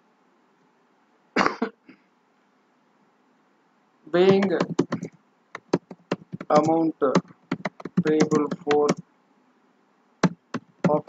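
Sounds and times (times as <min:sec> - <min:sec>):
person coughing: 0:01.4 - 0:02.0.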